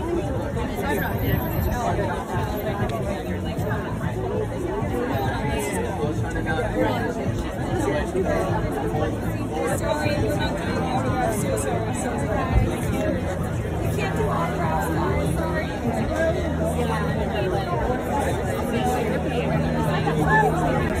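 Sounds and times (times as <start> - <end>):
people talking at once: 0.0 - 21.0.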